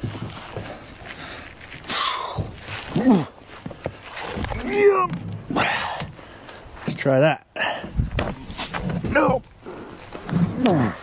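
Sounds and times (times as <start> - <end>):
man grunting: 2.9 - 3.3.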